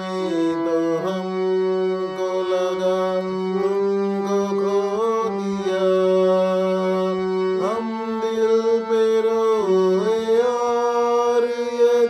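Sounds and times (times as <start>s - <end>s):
harmonium playing slow melody: 0.0s - 12.0s.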